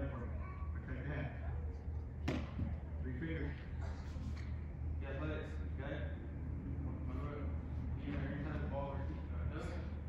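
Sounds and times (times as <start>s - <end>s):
steady low hum: 0.0s - 10.0s
baseball smacking into mitt: 2.2s - 2.7s.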